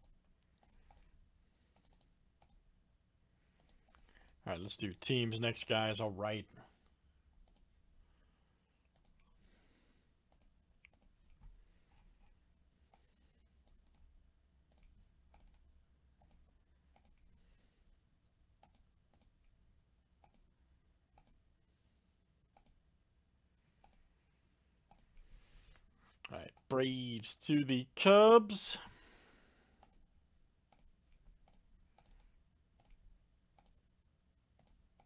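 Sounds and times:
faint computer mouse clicks: 0:01.7 - 0:02.6, 0:10.3 - 0:11.4, 0:16.2 - 0:17.3, 0:20.2 - 0:20.4, 0:30.7 - 0:33.0, 0:34.6 - 0:35.0.

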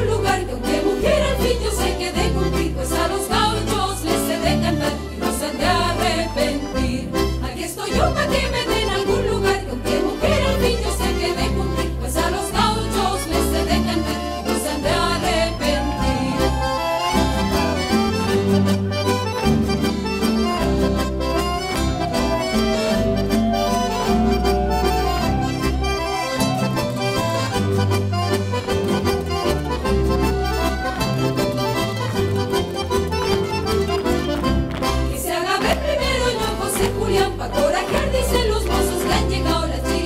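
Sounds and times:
folk dance music with guitars: 0:00.0 - 0:40.0.

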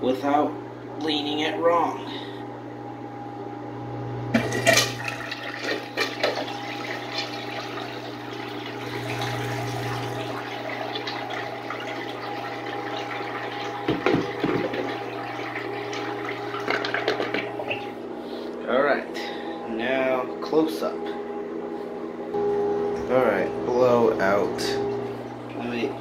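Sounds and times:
steady hum: 0:00.0 - 0:11.6, 0:12.2 - 0:26.0
toy toilet flushing: 0:04.3 - 0:18.0.

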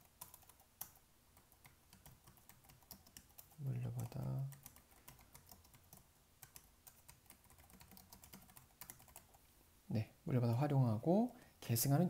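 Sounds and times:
computer keyboard typing: 0:00.0 - 0:09.4.

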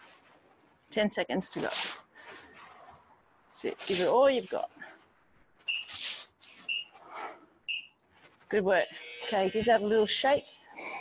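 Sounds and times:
resistance band squeaks: 0:05.6 - 0:07.1, 0:07.7 - 0:08.0, 0:08.6 - 0:10.7.

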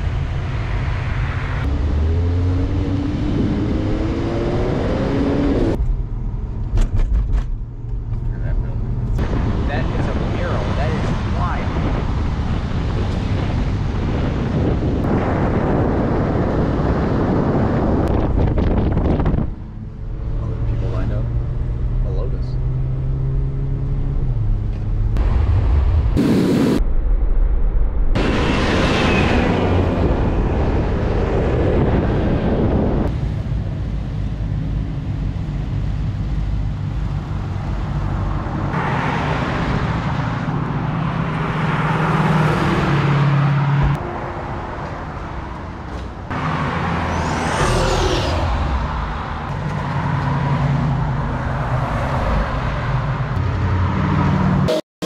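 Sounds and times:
engines revving: 0:00.0 - 0:05.8, 0:35.1 - 0:54.8
cars driving past: 0:34.7 - 0:54.7.

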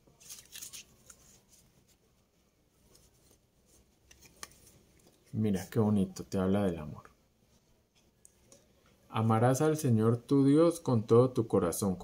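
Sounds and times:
paper cards rustling: 0:00.0 - 0:02.1, 0:02.8 - 0:05.4.

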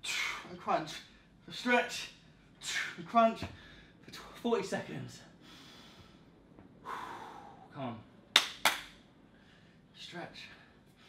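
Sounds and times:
sharp hand claps: 0:08.3 - 0:09.0.

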